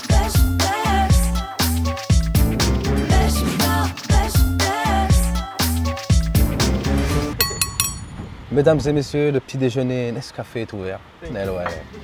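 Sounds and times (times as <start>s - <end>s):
knife tapping drinking glass: 7.4s - 8.2s.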